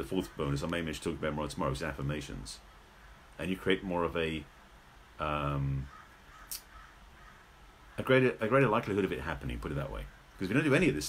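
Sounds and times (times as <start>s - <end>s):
crow cawing: 5.8s - 8.0s.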